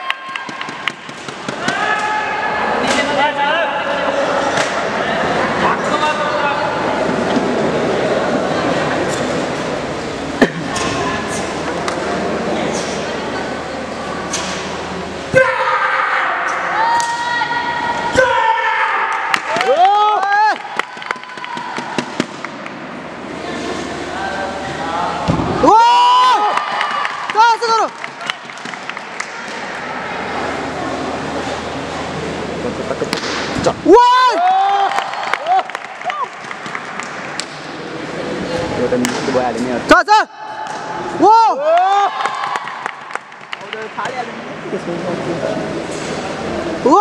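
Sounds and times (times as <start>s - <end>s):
crowd chatter: 0.0s - 34.0s, 35.4s - 47.0s
murmur of background noise: 0.0s - 47.0s.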